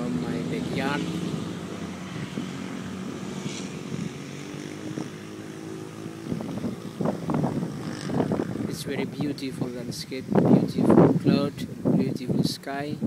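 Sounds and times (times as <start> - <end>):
engine humming: 0.0 - 11.2
wind buffeting microphone: 0.0 - 13.0.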